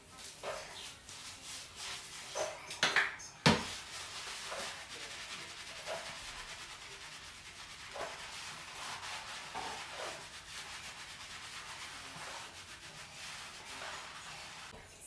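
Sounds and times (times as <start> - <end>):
hands scrubbing wet hair: 0.0 - 14.8.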